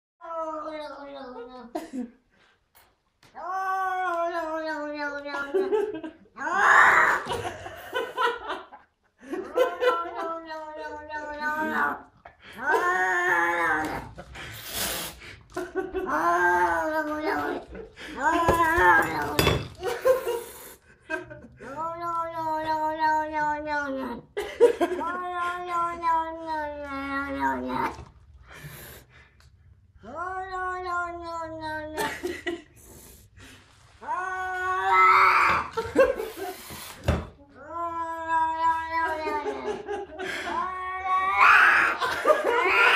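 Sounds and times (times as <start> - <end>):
cat yowling: 6.4 - 7.3, 9.8 - 12.0, 12.6 - 14.2, 18.2 - 19.6, 30.0 - 32.1, 34.0 - 35.8, 37.6 - 39.7, 40.5 - 42.9
person laughing loudly: 7.1 - 14.3, 38.9 - 40.7.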